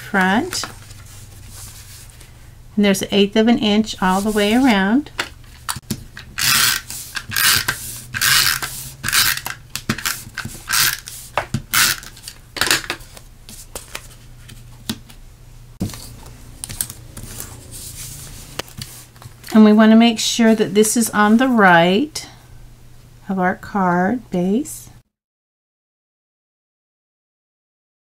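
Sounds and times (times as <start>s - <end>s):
paper scraping and rustling: 0.0s - 2.3s, 4.0s - 4.8s, 5.4s - 14.9s, 15.8s - 19.6s.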